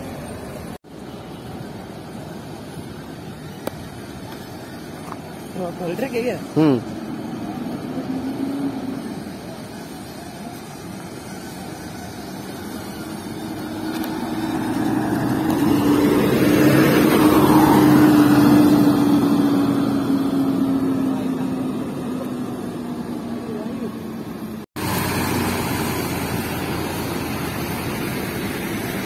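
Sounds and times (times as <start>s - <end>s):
bus engine driving past: 0.0s - 29.0s.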